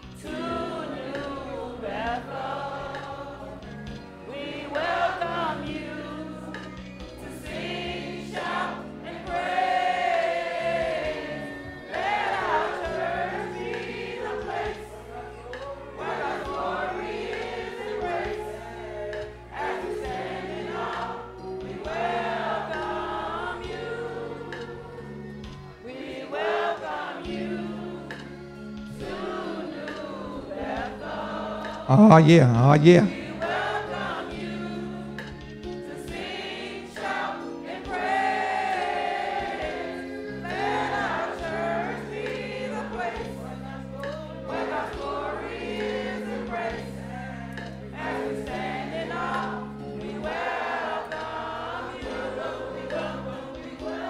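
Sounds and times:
congregation singing gospel song: 0:00.0 - 0:54.0.

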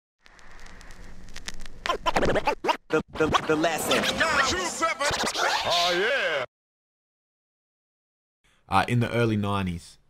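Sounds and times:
turntable scratching vocal sample: 0:01.9 - 0:06.4.

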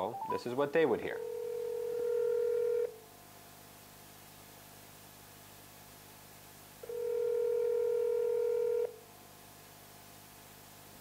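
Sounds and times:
telephone ringback tone: 0:01.2 - 0:02.9, 0:06.8 - 0:08.9.

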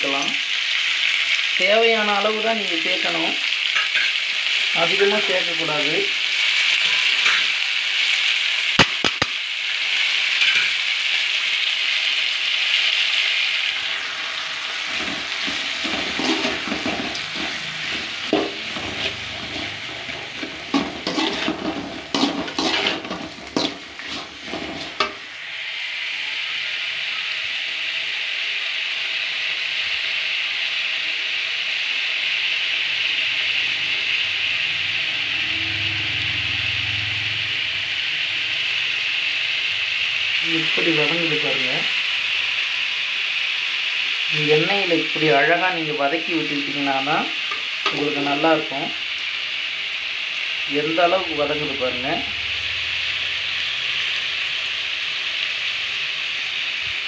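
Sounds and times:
vegetables sizzling in a pan: 0:00.0 - 0:57.0
metal spoon scraping a pan: 0:03.7 - 0:04.3, 0:06.6 - 0:07.6, 0:10.4 - 0:10.8, 0:14.7 - 0:25.3, 0:47.5 - 0:48.1.

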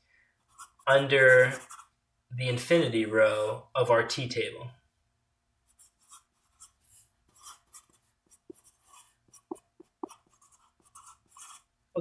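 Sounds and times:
marker writing on paper: 0:00.4 - 0:01.9, 0:05.7 - 0:11.7.

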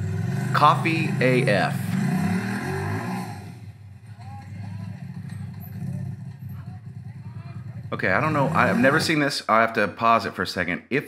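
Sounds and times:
utility vehicle engine running: 0:00.0 - 0:09.2
faint voices of onlookers: 0:04.0 - 0:08.6.

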